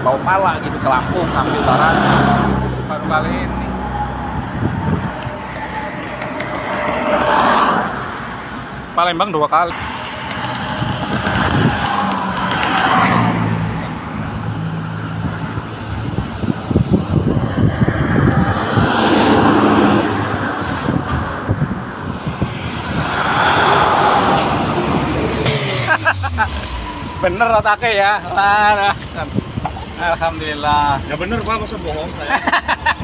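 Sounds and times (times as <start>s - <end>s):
highway traffic passing: 0.0s - 33.0s
low engine drone: 0.7s - 9.0s.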